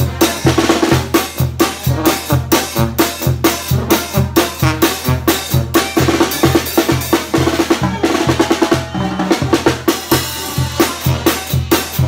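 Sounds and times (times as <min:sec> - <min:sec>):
bass drum beat: 0:00.0 - 0:12.0
snare drum rolls and rimshots: 0:00.0 - 0:12.0
sousaphone bass line: 0:05.7 - 0:12.0.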